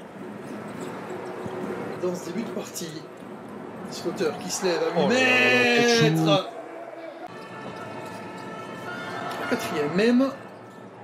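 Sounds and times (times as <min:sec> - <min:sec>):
arena crowd noise: 0:03.0 - 0:11.0.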